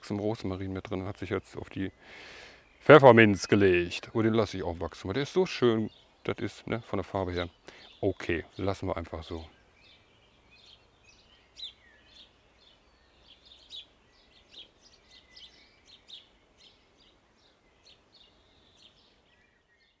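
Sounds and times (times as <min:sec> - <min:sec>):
quiet outdoor hiss: 0:00.0 - 0:20.0
small birds chirping: 0:00.0 - 0:20.0
thin whistled bird notes: 0:09.5 - 0:20.0.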